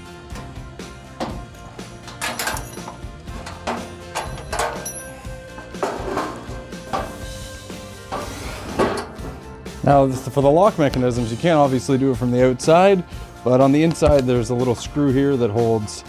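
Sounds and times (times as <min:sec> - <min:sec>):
background music: 0:00.0 - 0:16.0
metallic clinks and knocks: 0:01.2 - 0:07.1.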